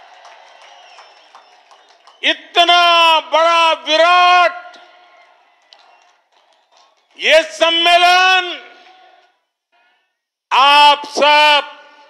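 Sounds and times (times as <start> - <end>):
man's amplified speech echo: 2.2 - 4.9, 7.1 - 12.0.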